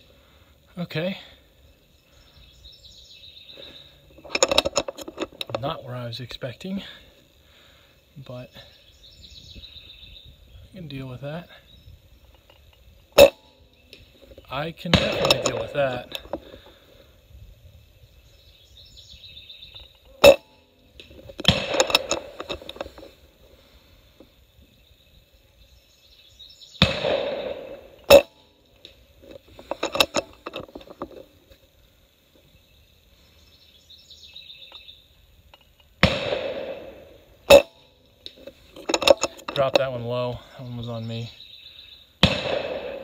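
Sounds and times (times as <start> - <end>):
air rifle shots: 14.9 - 16.5, 21.4 - 23.0, 26.8 - 28.2, 36.0 - 37.6, 42.2 - 43.0.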